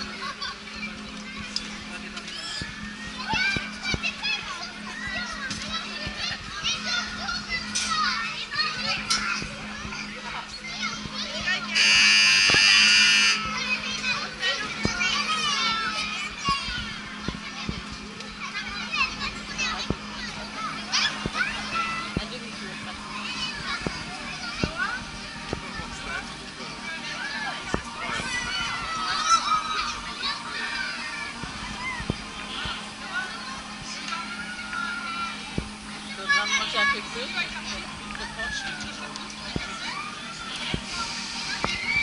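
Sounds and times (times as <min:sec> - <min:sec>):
steady low hum: 0:00.0 - 0:42.0
loud high held sound: 0:11.8 - 0:13.6
children shouting and squealing: 0:26.8 - 0:42.0.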